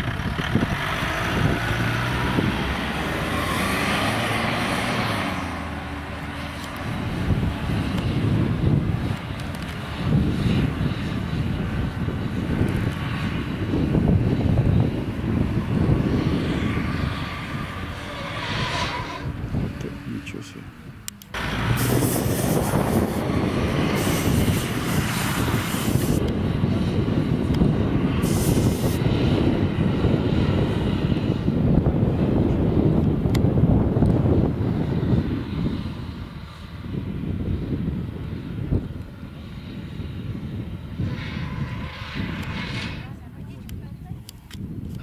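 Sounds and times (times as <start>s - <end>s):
engine running hard under load: 0.0s - 43.6s.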